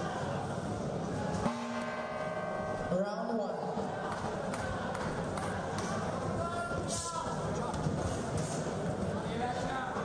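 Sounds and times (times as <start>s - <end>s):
boxing ring bell ringing: 1.5s - 3.0s.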